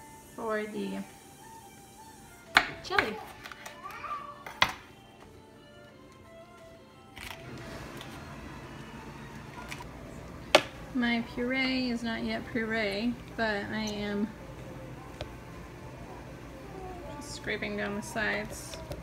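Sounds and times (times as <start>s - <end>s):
child's voice: 3.1s - 4.6s, 16.6s - 19.0s.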